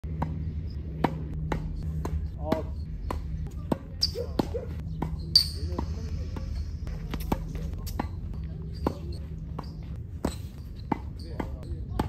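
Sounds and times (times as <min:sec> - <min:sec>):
low steady hum: 0:00.0 - 0:12.0
tennis ball hit with rackets: 0:00.1 - 0:12.0.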